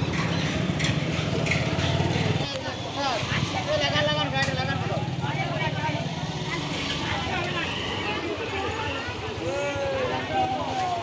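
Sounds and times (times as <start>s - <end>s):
chatter of people: 0.0s - 11.0s
motorcycle engine idling: 0.0s - 11.0s.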